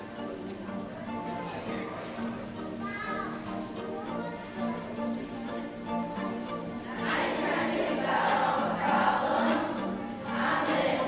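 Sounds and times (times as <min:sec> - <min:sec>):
children's choir singing: 0:06.1 - 0:11.0.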